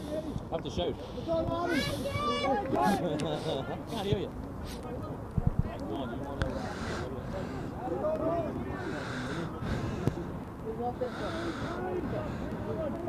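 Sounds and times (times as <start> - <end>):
players and spectators shouting: 1.4 - 3.9, 6.1 - 10.3.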